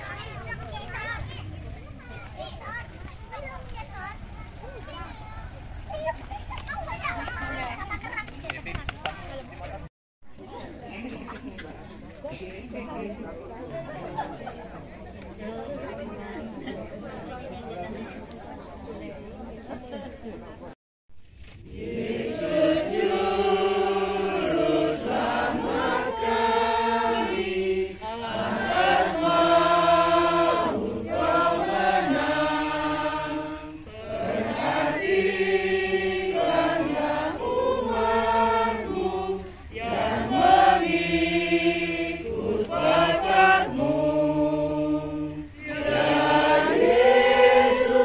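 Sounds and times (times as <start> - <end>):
congregation singing a hymn: 21.6 - 48.0.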